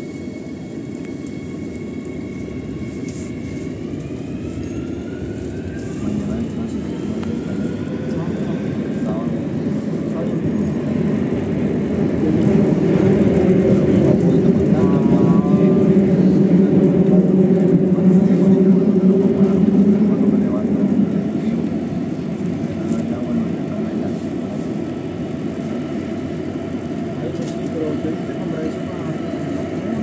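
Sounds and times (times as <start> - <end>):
wheels rumbling on rail: 0.0 - 30.0.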